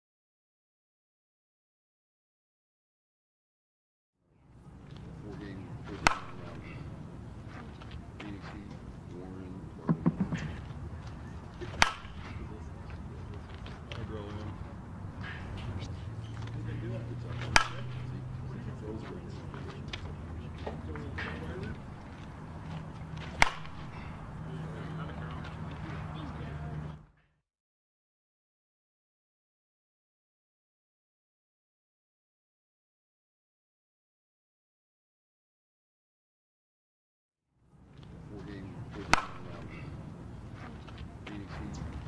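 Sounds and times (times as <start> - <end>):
faint voices murmuring: 4.4 - 27.1, 37.9 - 42.0
bat striking ball: 5.9 - 6.8, 9.9 - 10.6, 11.6 - 12.5, 17.3 - 18.1, 23.2 - 24.2, 39.0 - 40.0.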